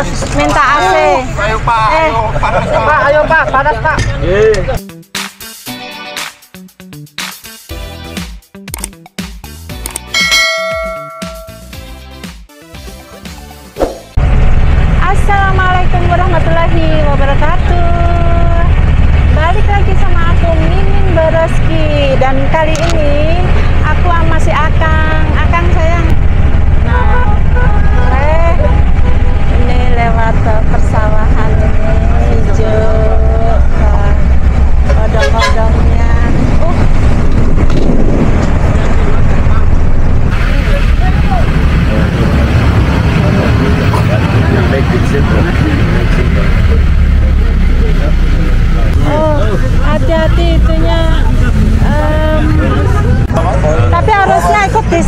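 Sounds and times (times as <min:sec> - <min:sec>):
road and wind noise hiss: 0:14.2 - 0:55.0
passengers' voices: 0:40.4 - 0:55.0.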